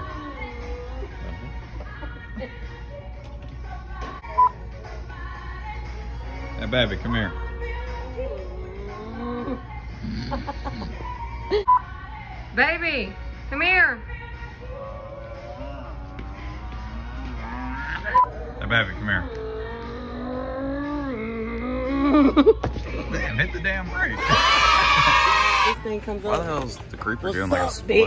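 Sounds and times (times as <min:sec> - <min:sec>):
background music: 0:00.0 - 0:28.0.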